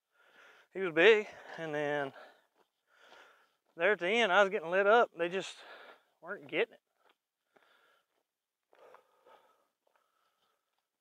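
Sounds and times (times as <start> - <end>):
man breathing heavily: 0.0 - 3.8, 5.5 - 6.2, 6.8 - 11.0.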